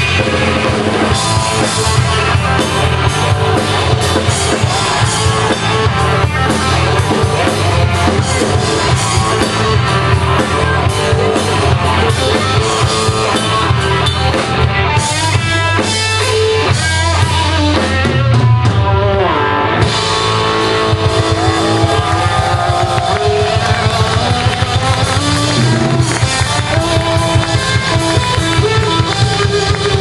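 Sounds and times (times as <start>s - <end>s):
bass guitar: 0.0s - 30.0s
drum kit: 0.0s - 30.0s
electric guitar: 0.0s - 30.0s.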